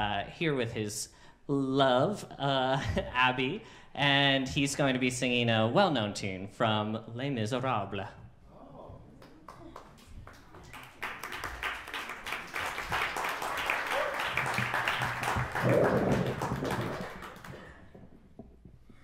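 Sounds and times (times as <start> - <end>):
audience applauding: 9.2 - 18.0.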